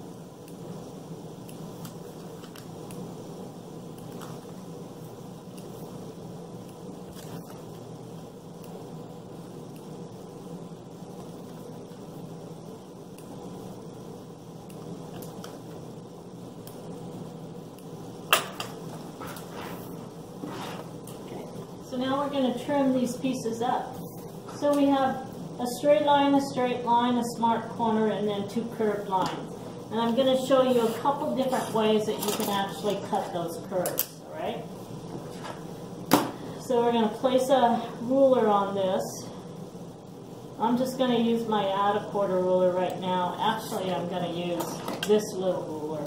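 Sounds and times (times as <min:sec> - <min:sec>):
low room hum: 0:00.0 - 0:46.0.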